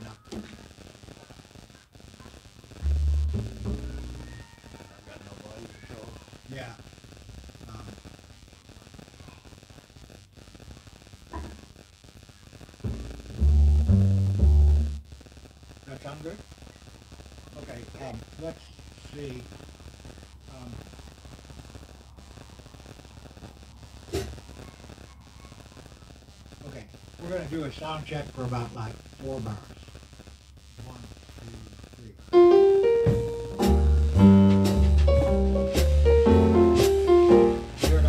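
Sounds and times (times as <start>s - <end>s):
quiet talk: 0.0s - 2.8s, 3.8s - 7.0s, 7.6s - 10.2s, 15.5s - 30.0s
plucked double bass notes: 2.8s - 4.2s, 12.9s - 15.0s, 32.5s - 38.0s.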